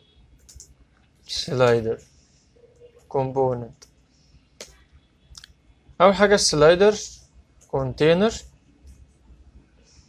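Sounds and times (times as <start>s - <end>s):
computer keyboard keystrokes: 0.4s - 0.8s.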